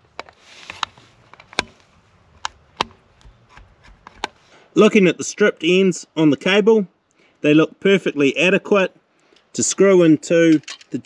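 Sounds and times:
soft rustle: 0:00.0 - 0:04.7
screwdriver clicks and scrapes: 0:00.1 - 0:01.8.

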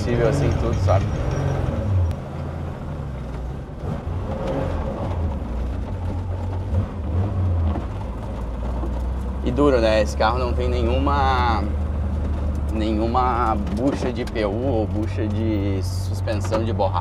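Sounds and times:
car engine driving: 0:00.0 - 0:17.0.

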